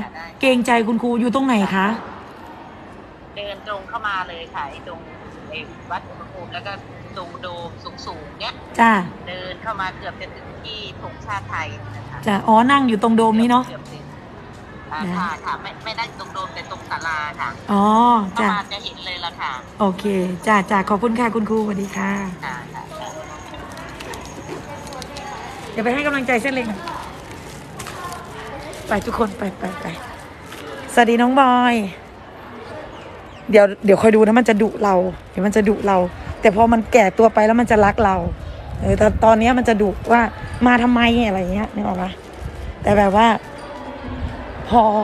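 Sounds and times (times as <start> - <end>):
low background noise: 0.0 - 45.0
woman speaking: 7.2 - 9.3, 10.9 - 13.8, 14.9 - 23.8, 24.4 - 30.2, 30.9 - 32.0, 33.5 - 42.2.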